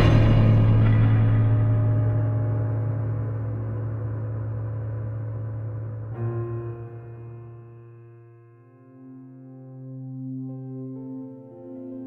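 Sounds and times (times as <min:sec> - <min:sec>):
deep ringing gong-like note: 0:00.0 - 0:07.4.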